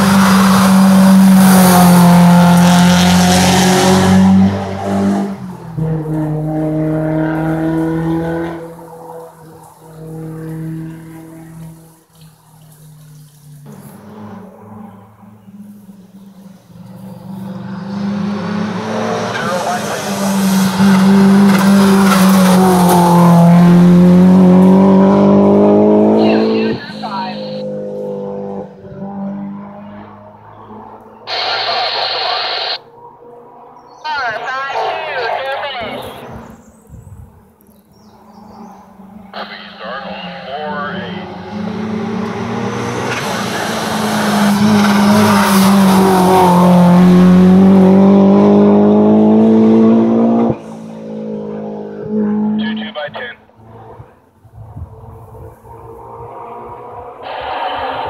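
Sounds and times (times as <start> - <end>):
car engine at full throttle: 0.0 - 37.3, 38.0 - 58.0.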